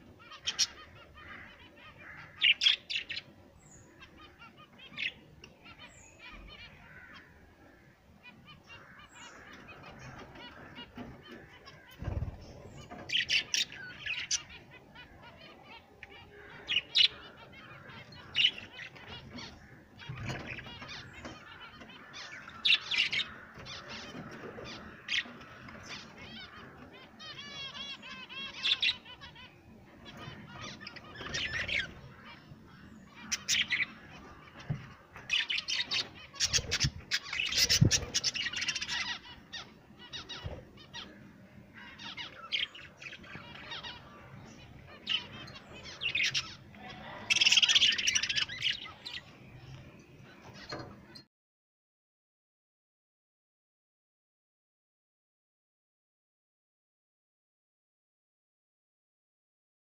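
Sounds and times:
budgerigars chirping: 0.1 - 7.3, 8.2 - 15.5, 16.1 - 49.8.

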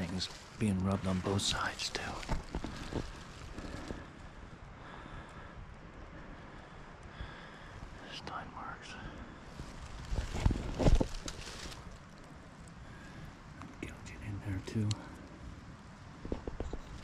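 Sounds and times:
footsteps in dry leaves: 0.0 - 4.0, 9.5 - 12.2.

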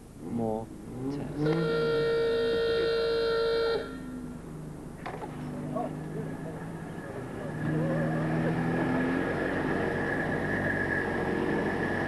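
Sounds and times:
low hum: 0.0 - 12.0
car horn long note: 1.4 - 4.4.

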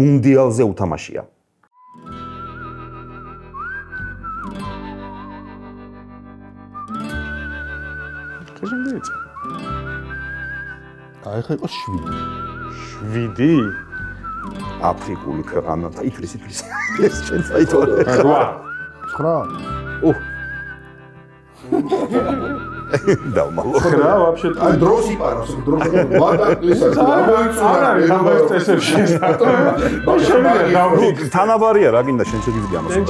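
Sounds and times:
whistle-like melody with vibrato: 1.8 - 28.3, 29.5 - 33.0
man speaking: 8.5 - 9.2, 11.2 - 12.2, 12.8 - 13.8, 14.8 - 20.3, 22.9 - 33.0.

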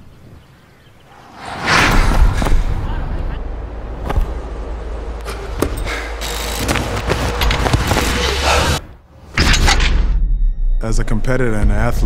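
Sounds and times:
deep drone: 1.1 - 8.8.

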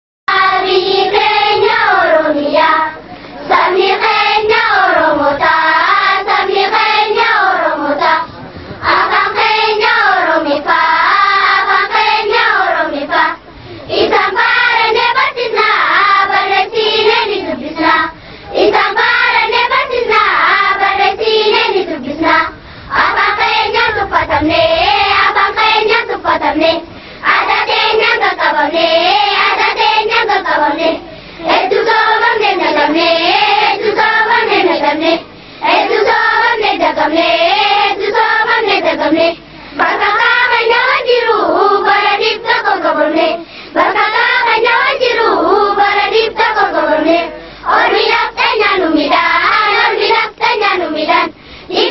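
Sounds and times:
children singing in unison: 0.3 - 51.9.

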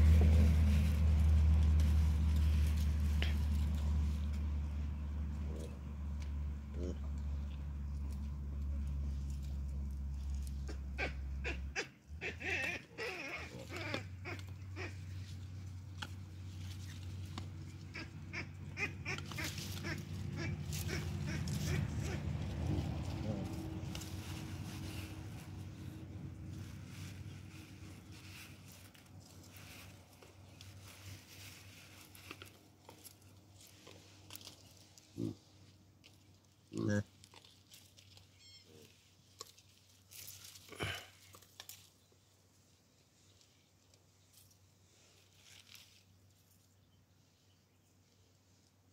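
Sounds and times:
low rumble: 0.0 - 11.4, 19.5 - 32.2
baboon grunting: 10.6 - 15.0, 35.1 - 35.5
baboons grunting and calling: 10.6 - 15.3, 17.8 - 25.0, 35.0 - 35.7, 40.7 - 41.4.

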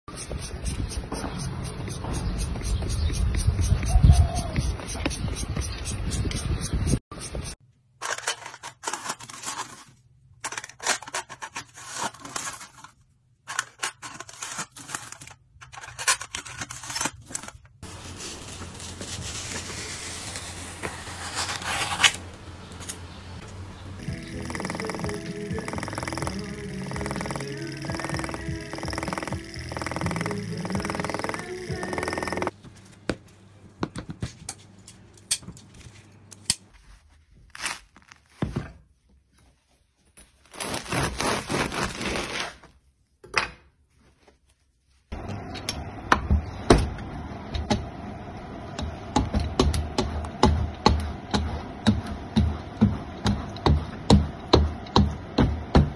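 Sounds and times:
crackly scrape of leaf: 17.8 - 23.0, 40.5 - 42.7
blades slicing through foil: 17.9 - 22.3.

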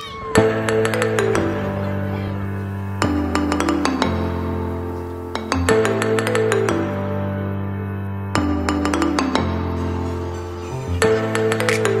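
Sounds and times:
background music with held chords: 0.1 - 12.0.

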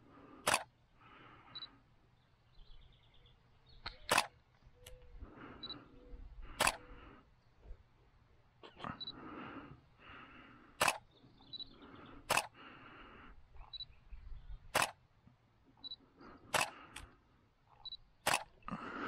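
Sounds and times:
camera shutter clicks: 0.4 - 0.7, 3.9 - 5.0, 6.5 - 6.9, 10.8 - 11.1, 12.2 - 12.6, 14.7 - 15.0, 16.5 - 17.1, 17.7 - 18.6.

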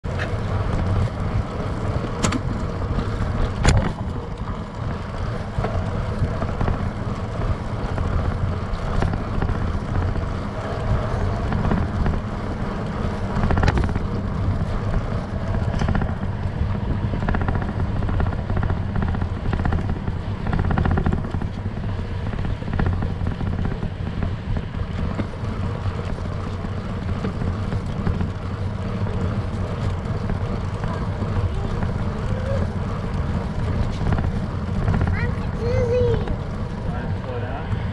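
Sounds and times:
tyres rolling on pavement: 0.0 - 37.9
wind noise on microphone: 0.0 - 37.9.

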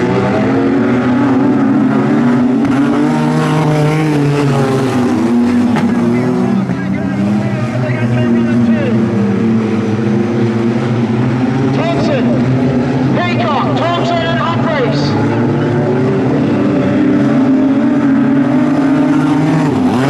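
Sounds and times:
racing car engines: 0.0 - 20.0.

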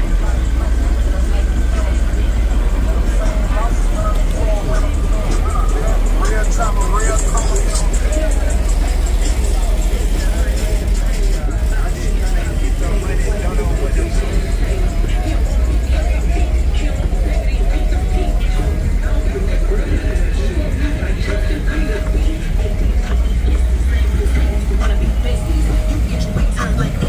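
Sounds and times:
cars driving slowly past: 0.0 - 27.0
music: 0.0 - 27.0
voices: 0.0 - 27.0.

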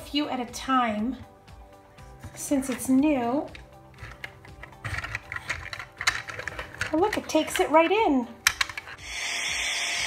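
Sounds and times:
toy sweeper clicking and clattering: 3.5 - 9.0.

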